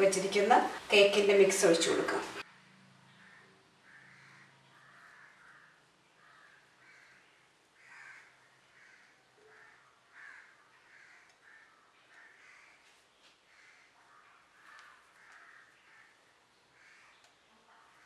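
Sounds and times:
faint bird calls: 3.0 - 18.0.

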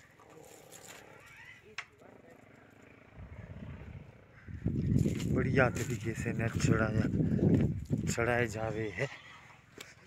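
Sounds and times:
wind rumbling on microphone: 3.1 - 8.8.

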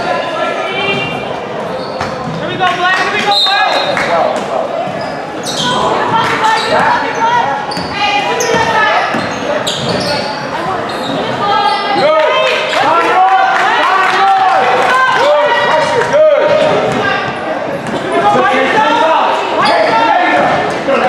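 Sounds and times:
voices calling out: 0.0 - 21.0.

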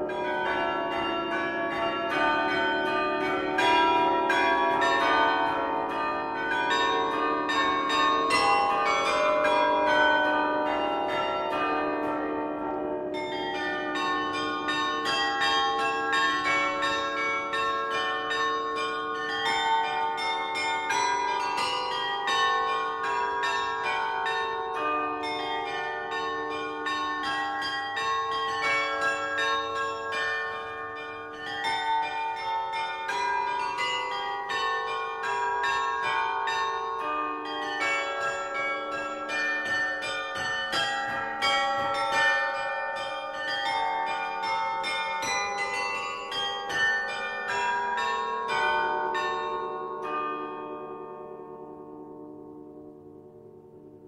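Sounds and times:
carillon bells ringing: 0.0 - 52.9.

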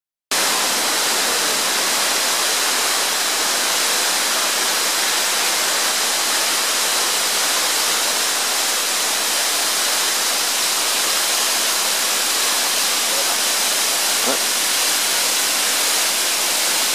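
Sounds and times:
waterfall rushing: 0.3 - 16.9.

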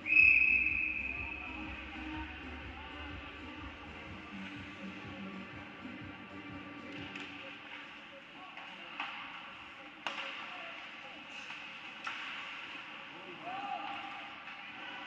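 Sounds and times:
voices in rink: 0.0 - 15.0
hockey stick hitting puck: 10.0 - 12.8.

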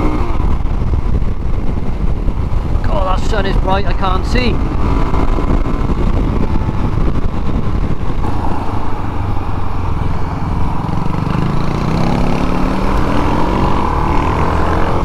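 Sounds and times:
motorcycle engine running: 0.0 - 15.0
wind buffeting microphone: 0.0 - 15.0.

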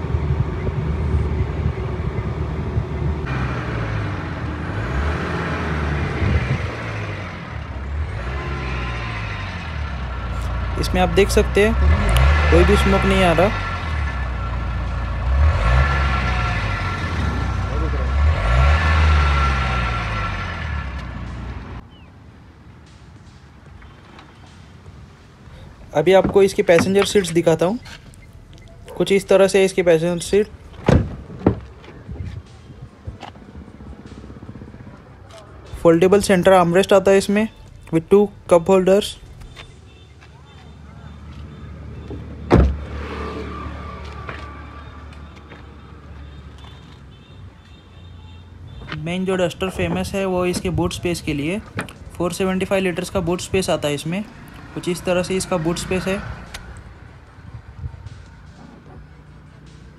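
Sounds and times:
diesel engine running and revving: 0.0 - 21.8, 31.9 - 37.0, 41.2 - 46.4, 49.4 - 59.9
loud thump: 30.8 - 31.7, 42.5 - 42.8.

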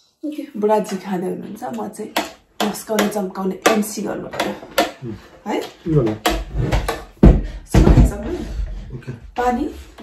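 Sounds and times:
people talking: 0.2 - 6.2, 7.7 - 9.9.

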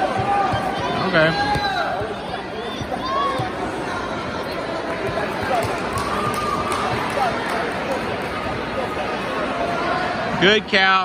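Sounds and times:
babble of many voices: 0.0 - 11.0.

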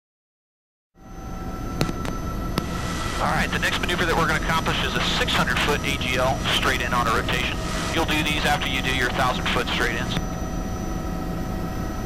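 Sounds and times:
helicopter engine and rotors rumbling: 1.0 - 12.0
thin high whines: 1.0 - 12.0.

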